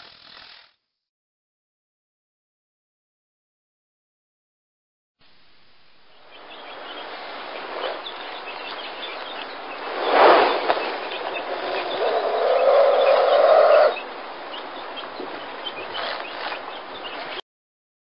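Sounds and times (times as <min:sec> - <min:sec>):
bird chirps: 0:06.0 - 0:17.4.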